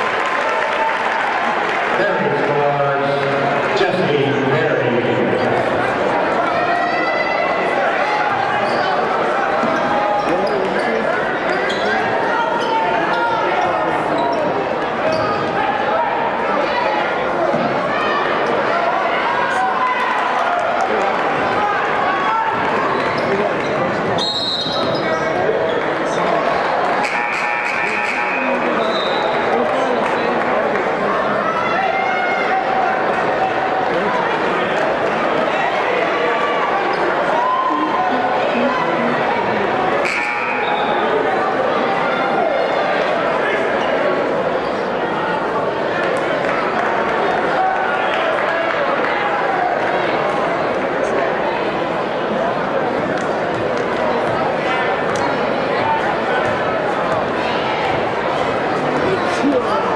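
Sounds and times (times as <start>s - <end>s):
crowd talking and shouting: 0.0s - 59.9s.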